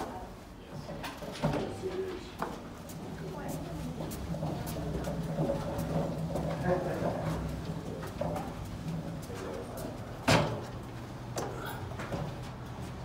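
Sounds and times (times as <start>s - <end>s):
dolly rolling on carpet: 2.9s - 11.2s.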